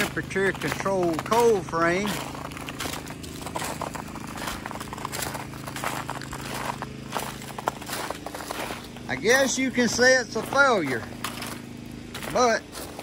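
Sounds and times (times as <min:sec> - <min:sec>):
footsteps crunching on frozen snow: 0:00.0 - 0:13.0
portable generator humming: 0:00.0 - 0:13.0.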